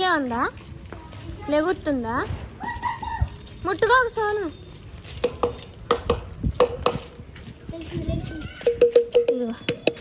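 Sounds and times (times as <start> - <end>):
sharp ringing taps: 8.6 - 10.0.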